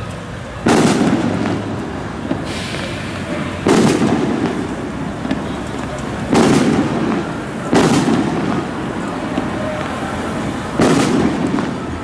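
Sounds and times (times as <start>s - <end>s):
firecrackers banging: 0.0s - 12.0s
street noise: 0.0s - 12.0s.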